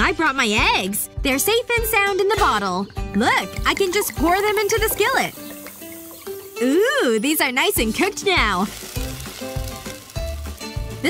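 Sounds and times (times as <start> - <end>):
background music: 0.0 - 11.0
eggs sizzling in skillet: 3.2 - 11.0.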